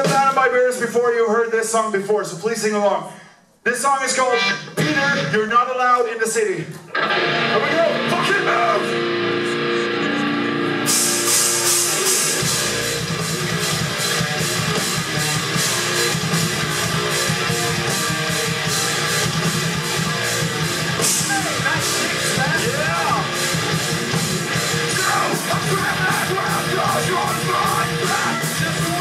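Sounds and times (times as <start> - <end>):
drums with cymbals: 0.0 - 0.8, 10.8 - 29.0
bass guitar: 4.4 - 5.4, 6.8 - 29.0
electric guitar: 6.8 - 29.0.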